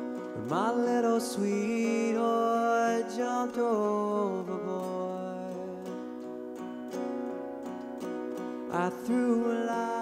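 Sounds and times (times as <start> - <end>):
man singing: 0.0 - 6.6, 8.5 - 10.0
acoustic guitar strumming: 0.0 - 10.0.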